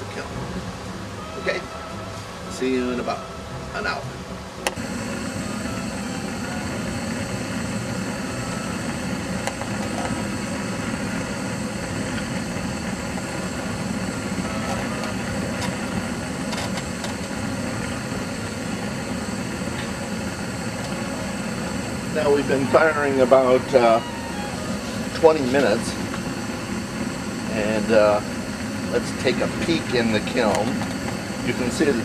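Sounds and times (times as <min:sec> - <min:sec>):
gas burner flame rushing: 0:03.8 - 0:32.0.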